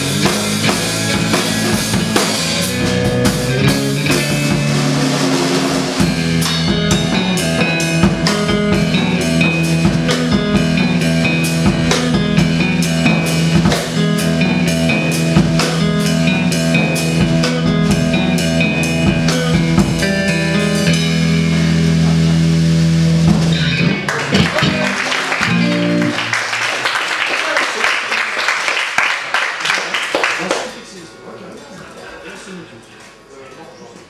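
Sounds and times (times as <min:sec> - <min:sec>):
electric guitar chord ringing: 0:00.0 - 0:17.2, 0:17.8 - 0:26.3
audience noise: 0:00.0 - 0:34.0.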